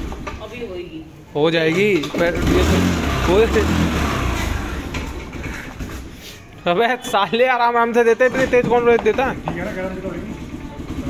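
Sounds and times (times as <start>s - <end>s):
scooter engine running: 2.0s - 6.1s, 8.7s - 11.0s.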